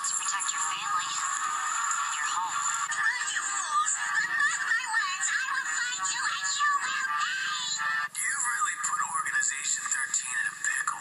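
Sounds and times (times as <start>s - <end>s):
pop song through tv speaker: 0.0s - 11.0s.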